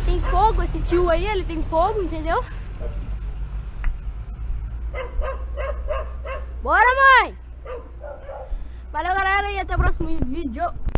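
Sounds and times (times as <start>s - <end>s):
dog yapping: 4.9s - 6.6s, 7.6s - 8.6s
dog crying: 5.0s - 6.6s, 7.6s - 8.6s.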